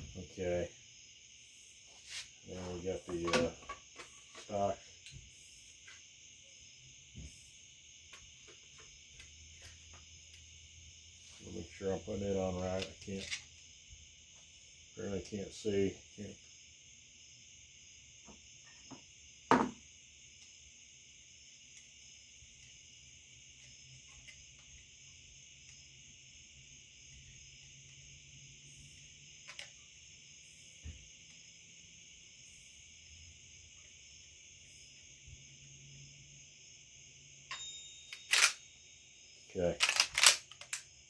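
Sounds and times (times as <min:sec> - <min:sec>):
faint high-pitched hiss: 0:00.0 - 0:41.0
screwdriver and metal clicks: 0:12.8 - 0:13.5, 0:38.1 - 0:38.6, 0:39.8 - 0:40.8.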